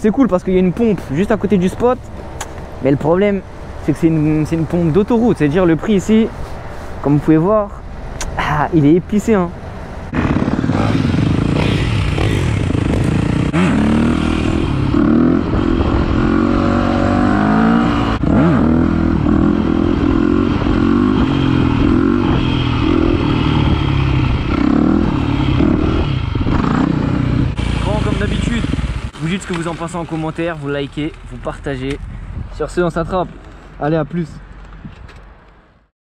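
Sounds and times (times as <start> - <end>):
dirt bike engine revving: 10.0 - 30.4.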